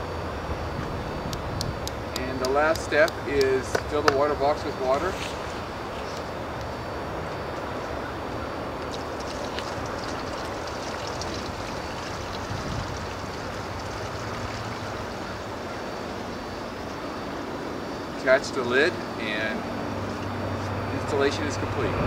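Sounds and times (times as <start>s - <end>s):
water pouring from a jug: 8.8s - 16.2s.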